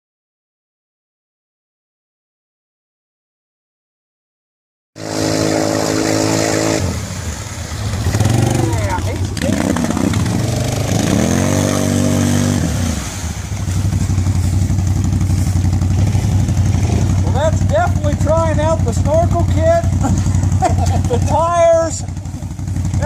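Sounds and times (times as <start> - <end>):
atv engine revving: 5.0 - 23.0.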